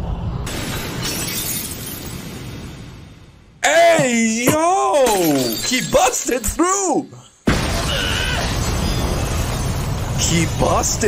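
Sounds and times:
glass shattering crash: 0:00.5 - 0:02.9, 0:04.5 - 0:06.8, 0:07.5 - 0:10.8.

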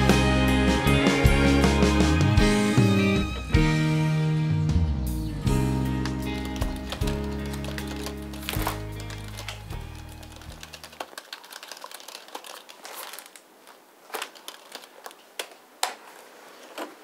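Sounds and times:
background music: 0:00.0 - 0:11.0
sharp taps and clicks: 0:06.0 - 0:12.6
paper shuffling on a desk: 0:06.3 - 0:17.0.

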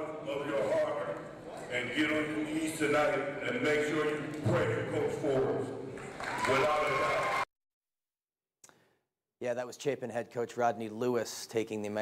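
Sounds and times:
man speaking over public address: 0:00.0 - 0:05.8, 0:06.4 - 0:07.3.

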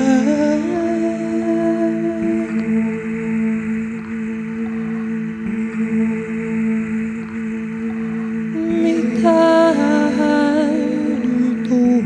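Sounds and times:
ambient music drone: 0:00.0 - 0:12.0.

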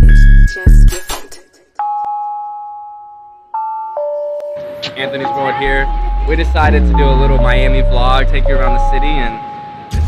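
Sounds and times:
doorbell chime: 0:01.8 - 0:10.0.

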